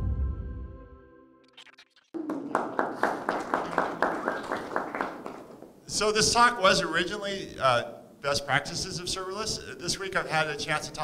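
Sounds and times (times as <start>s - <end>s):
audience clapping: 2.1s - 5.8s.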